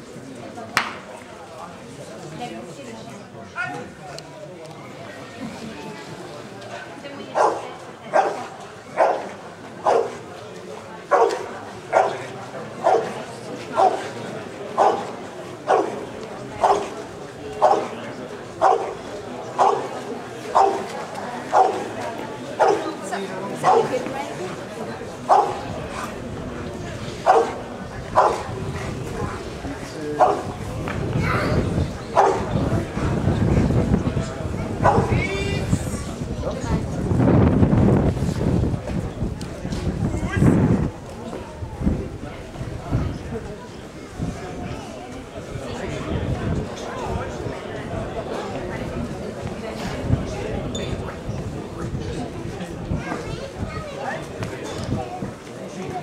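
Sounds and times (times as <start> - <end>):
spectators chattering: 0.0 - 56.0
dog barking sharply: 20.6 - 20.8.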